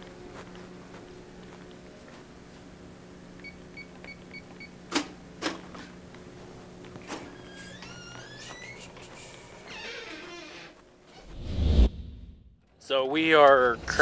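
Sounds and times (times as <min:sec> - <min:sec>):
low electrical hum: 0:00.0 - 0:11.4, 0:12.4 - 0:14.0
rising whine of door: 0:07.0 - 0:11.6.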